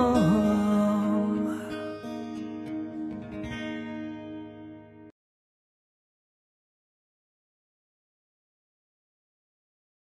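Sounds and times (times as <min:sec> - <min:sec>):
acoustic guitar strumming: 0:00.0 - 0:05.1.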